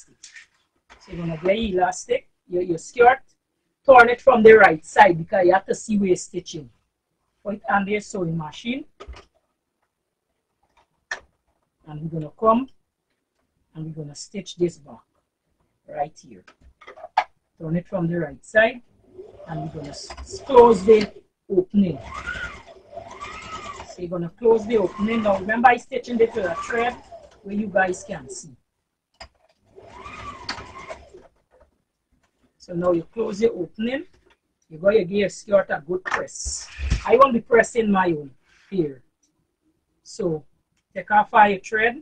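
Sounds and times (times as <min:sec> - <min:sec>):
sewing machine motor: 0:00.9 - 0:01.7, 0:18.6 - 0:28.4, 0:29.2 - 0:31.7
fabric handling clicks and ticks: 0:09.0 - 0:11.8, 0:29.1 - 0:32.6.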